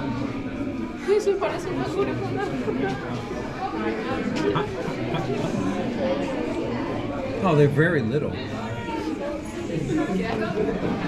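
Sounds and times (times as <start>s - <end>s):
indistinct chatter in a hall: 0.0s - 11.0s.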